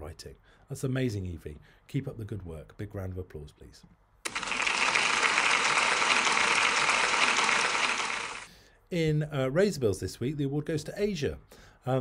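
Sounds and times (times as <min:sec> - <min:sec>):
crowd applause: 0:04.3 - 0:08.5.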